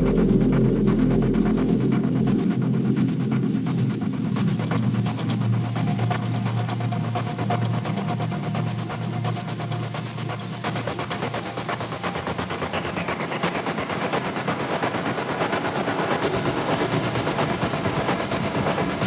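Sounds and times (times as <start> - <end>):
electronic drone music: 0.0 - 19.0.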